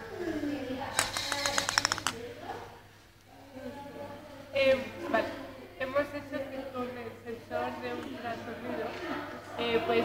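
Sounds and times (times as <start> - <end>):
rapid sharp clatter: 1.0 - 2.2.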